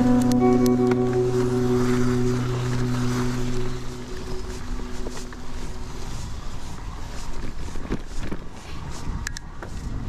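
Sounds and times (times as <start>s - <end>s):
wind rumbling on microphone: 0.0s - 10.0s
bicycle tyres on gravel: 1.2s - 10.0s.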